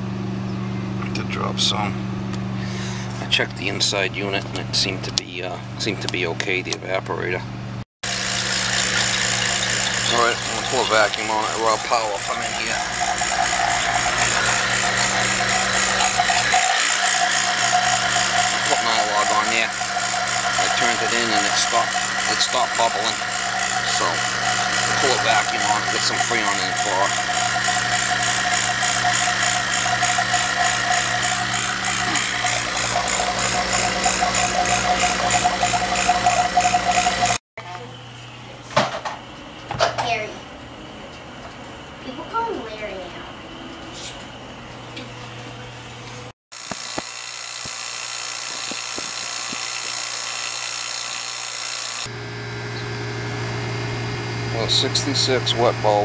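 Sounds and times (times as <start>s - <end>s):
electric machine humming and rattling: 7.4s - 56.0s.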